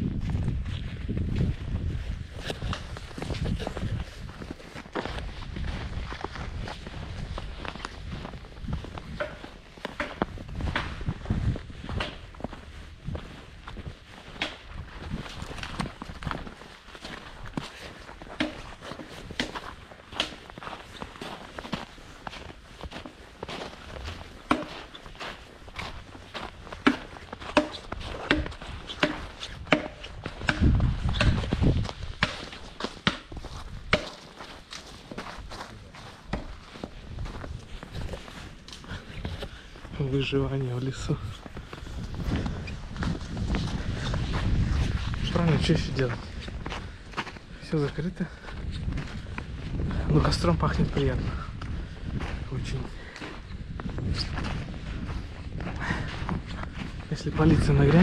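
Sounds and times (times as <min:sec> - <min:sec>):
footsteps crunching through snow: 0:00.0 - 0:58.0.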